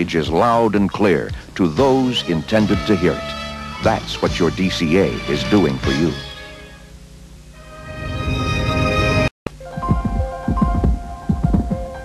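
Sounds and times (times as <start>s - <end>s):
background music of held notes: 0.3s - 6.8s, 7.6s - 12.0s.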